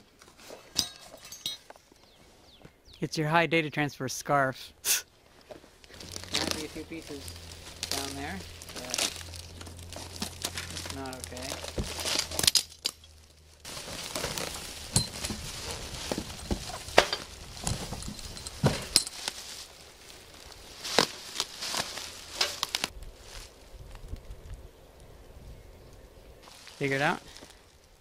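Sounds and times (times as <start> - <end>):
plastic wrap crinkling: 5.5 - 23.0.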